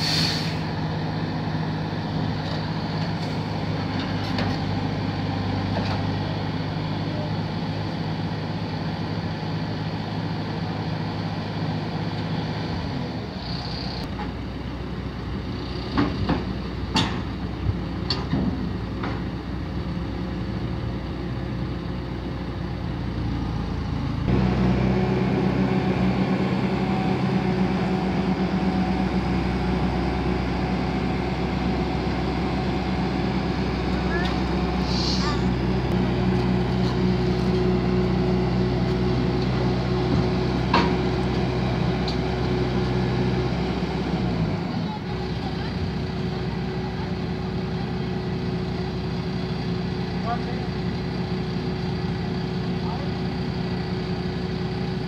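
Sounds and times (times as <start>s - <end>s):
loader engine revving: 23.2s - 55.0s.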